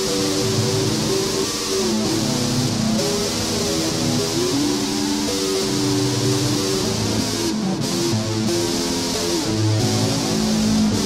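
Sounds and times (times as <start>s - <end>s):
distorted electric guitar lead: 0.0s - 11.0s.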